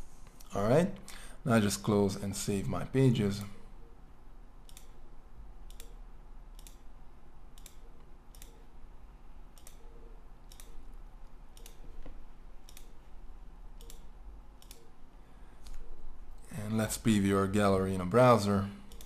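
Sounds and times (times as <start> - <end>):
computer mouse clicking: 4.6 - 5.0, 5.6 - 6.9, 7.5 - 8.7, 9.5 - 13.0, 13.8 - 15.0.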